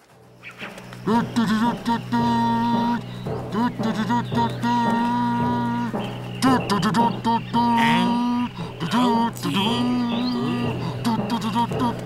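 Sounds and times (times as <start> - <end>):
hand drum beats: 1.0 - 12.0.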